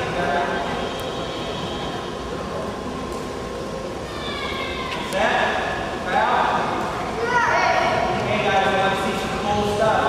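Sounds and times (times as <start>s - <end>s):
faint voices: 0.0s - 10.0s
rumbling hall background noise: 0.0s - 10.0s.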